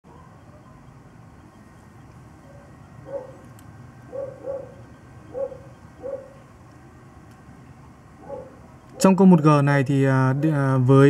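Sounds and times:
low background noise: 0:00.1 - 0:11.0.

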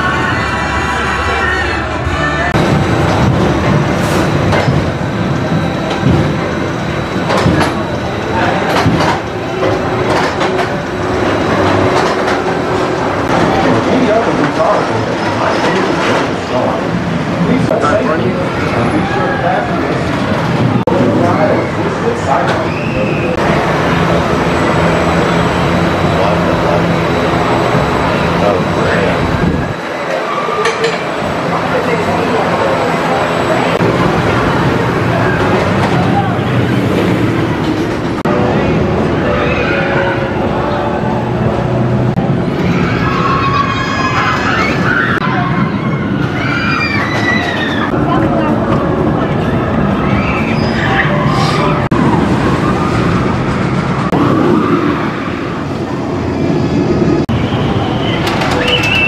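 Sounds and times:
roller coaster rumbling on track: 0:00.0 - 0:59.0
roller coaster clacks: 0:02.6 - 0:59.0.

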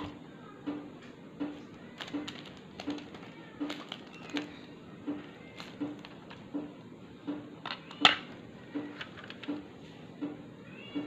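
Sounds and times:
cellophane wrapper crinkling: 0:01.8 - 0:06.4.

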